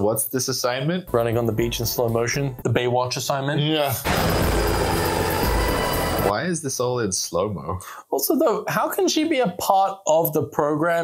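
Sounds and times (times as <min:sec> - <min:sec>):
loud film soundtrack music: 0:04.0 - 0:06.3.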